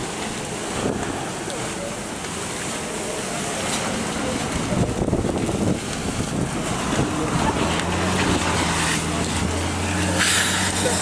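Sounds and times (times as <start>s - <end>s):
continuous rushing noise: 0.0s - 11.0s
low engine hum: 2.4s - 11.0s.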